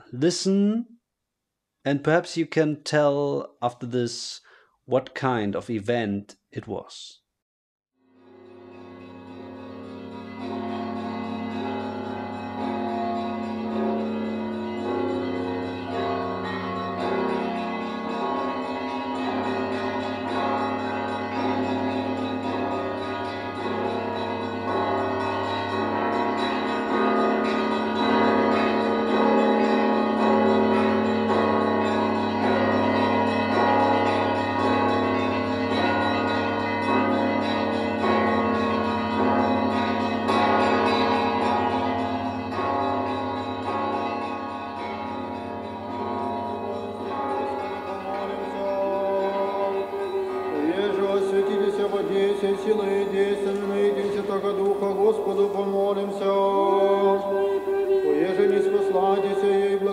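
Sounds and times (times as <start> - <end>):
church bells ringing: 8.2 - 59.9.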